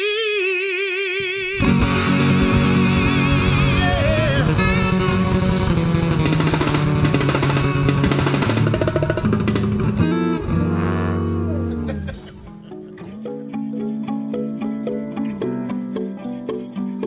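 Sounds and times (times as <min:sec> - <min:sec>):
hand drum: 0:01.6 - 0:13.6
acoustic guitars strumming: 0:01.6 - 0:16.0.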